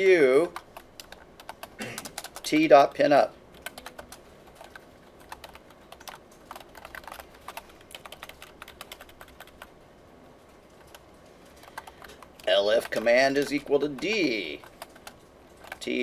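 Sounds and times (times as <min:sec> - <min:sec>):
typing on computer keyboard: 0:00.4 - 0:02.7, 0:03.5 - 0:09.7, 0:10.8 - 0:16.0.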